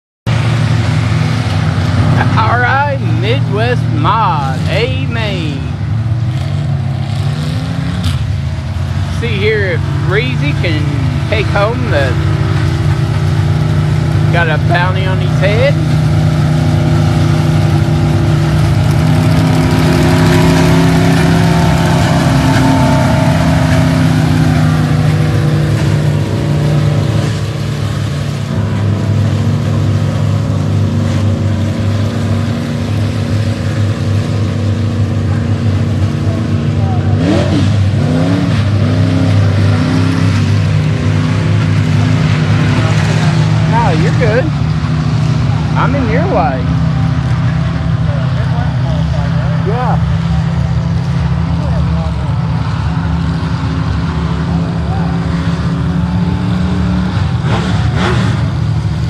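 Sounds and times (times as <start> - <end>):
race car engines droning: 0.3 - 59.0.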